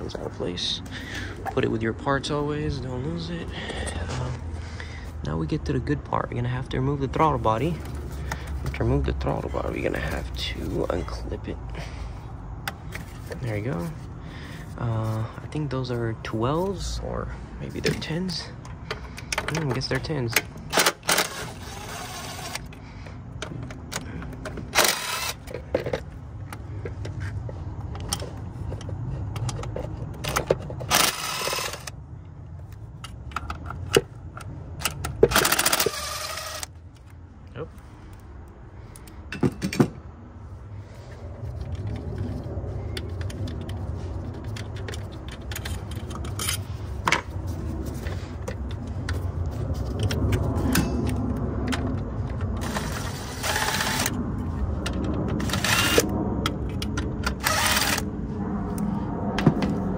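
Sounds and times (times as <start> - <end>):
cordless driver whirring: 20.7 - 22.8, 24.4 - 25.6, 30.8 - 32.0, 35.2 - 36.7, 52.6 - 54.2, 55.4 - 56.1, 57.2 - 58.1.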